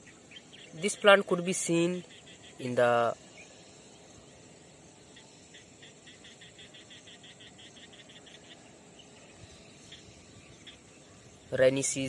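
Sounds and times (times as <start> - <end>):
insect chirping: 0.0 - 12.0
low outdoor hiss: 0.0 - 12.0.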